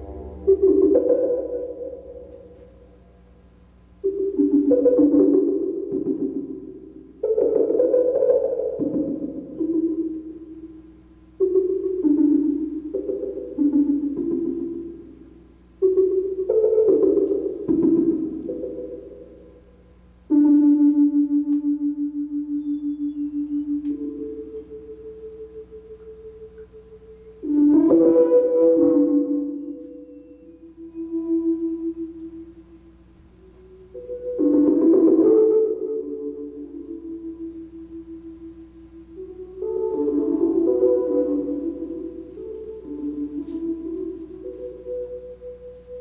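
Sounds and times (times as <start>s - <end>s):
loud pitched electronic tone: 0.0s - 2.4s
higher electronic tone: 0.0s - 2.6s
synthesizer low note with tremolo: 0.0s - 3.2s
droning electronic tone: 0.0s - 46.0s.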